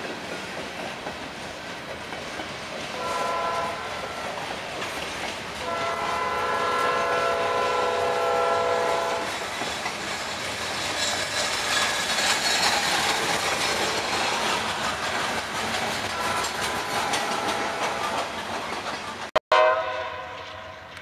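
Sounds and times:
freight train wheels on rail: 0:00.0 - 0:21.0
locomotive air horn: 0:03.0 - 0:04.4, 0:05.6 - 0:09.3, 0:16.2 - 0:18.2, 0:19.5 - 0:21.0.

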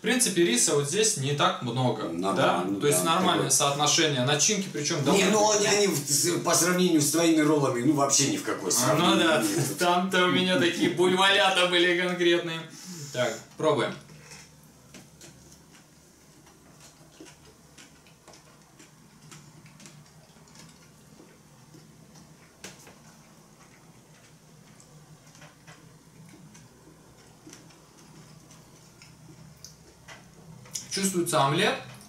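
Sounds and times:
low steady hum: 0:00.0 - 0:32.0
chewing clicks: 0:14.4 - 0:30.9.

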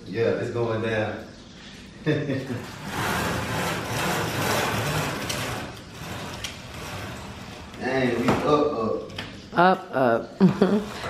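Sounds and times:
roller shade click: 0:02.9 - 0:07.8.

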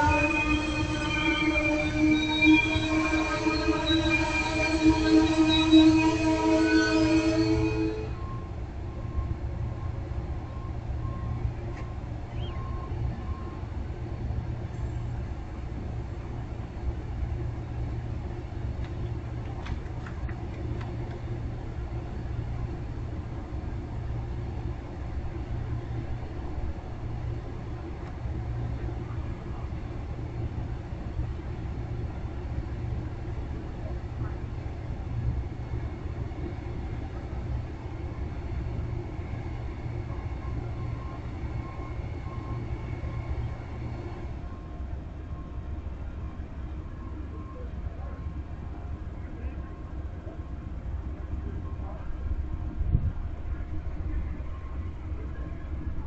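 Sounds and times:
train wheels rumbling on track: 0:00.0 - 0:56.0.

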